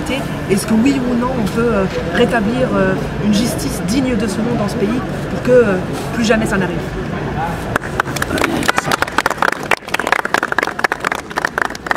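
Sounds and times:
crowd clapping: 7.7s - 11.9s.

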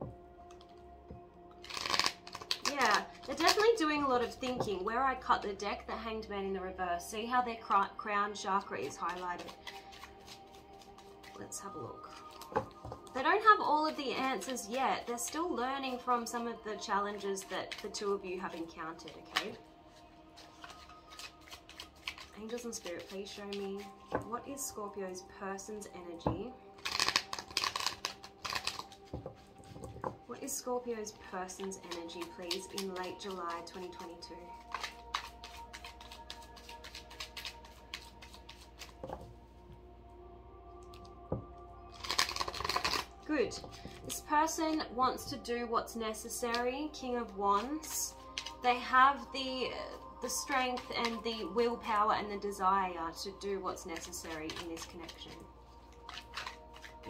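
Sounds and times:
soft background music: 0.0s - 57.0s
cards being shuffled: 1.6s - 4.8s, 8.7s - 16.4s, 17.1s - 24.3s, 26.2s - 39.4s, 41.9s - 44.8s, 46.2s - 46.8s, 47.6s - 49.3s, 49.9s - 51.2s, 53.8s - 57.0s.

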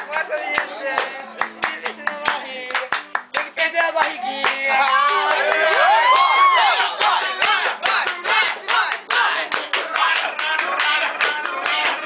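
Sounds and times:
people clapping hands: 0.0s - 12.0s.

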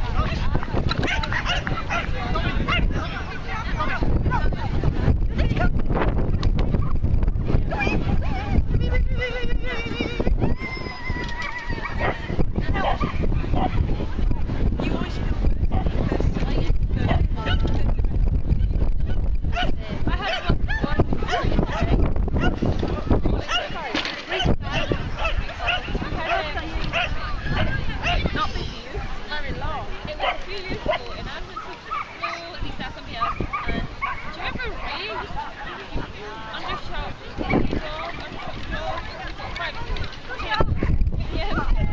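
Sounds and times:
people's voices: 0.0s - 41.9s
wind buffeting microphone: 0.0s - 41.9s
dogs barking and yelping: 1.0s - 3.0s, 10.4s - 14.0s, 19.0s - 28.4s, 30.2s - 35.8s, 36.6s - 40.6s.

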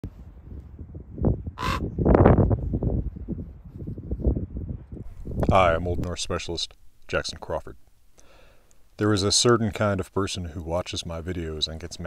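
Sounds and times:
ravens croaking: 1.6s - 1.9s.

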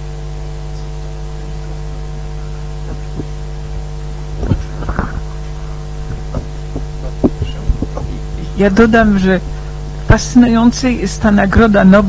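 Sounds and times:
electrical mains hum: 0.0s - 12.0s
microphone being handled: 2.3s - 9.7s.

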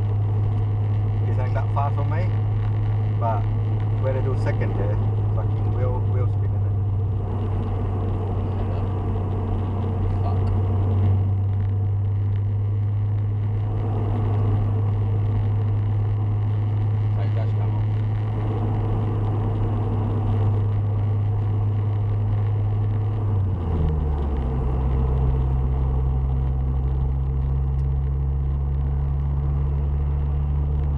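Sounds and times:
car engine droning: 0.0s - 30.9s
tyre and road noise: 0.0s - 30.9s.

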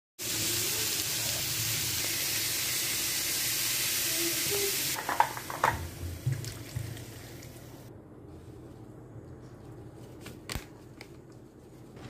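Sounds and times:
onions and tomato sizzling in pot: 0.2s - 7.9s.

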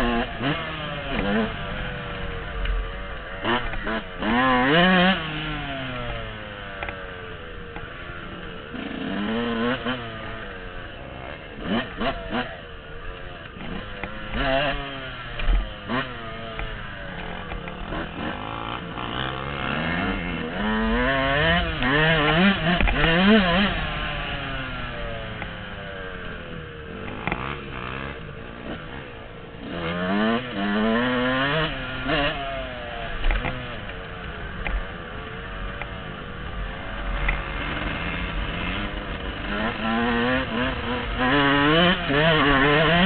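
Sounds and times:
dirt bike engine revving: 0.0s - 43.0s.

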